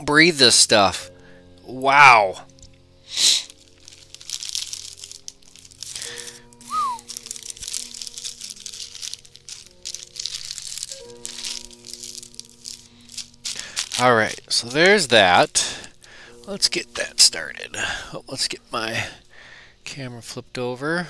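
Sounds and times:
soft background music: 0:00.0 - 0:21.0
plastic bag crinkling: 0:02.5 - 0:19.2.

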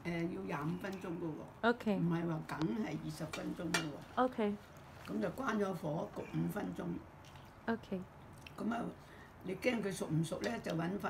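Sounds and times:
woman talking: 0:01.6 - 0:02.2, 0:04.2 - 0:04.6, 0:07.7 - 0:08.1.

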